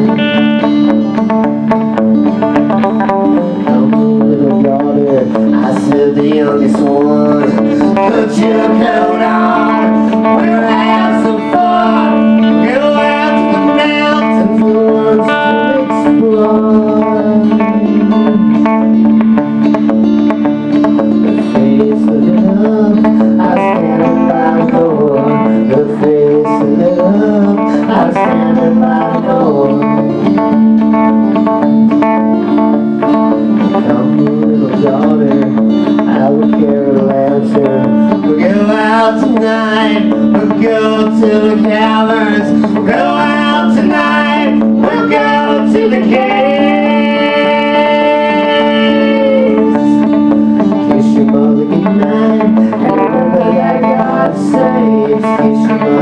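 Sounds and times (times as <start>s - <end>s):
country-rock band playing: 0.0s - 56.0s.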